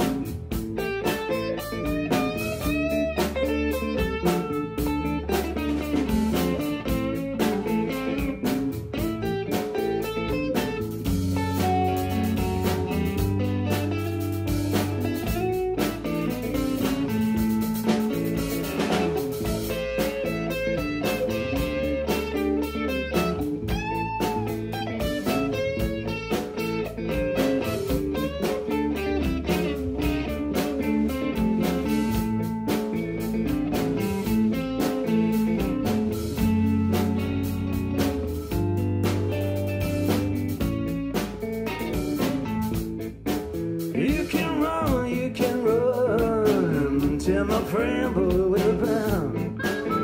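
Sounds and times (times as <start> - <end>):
electric guitar solo: 0.0 - 43.8, 48.9 - 50.0
bass and drums: 0.0 - 50.0.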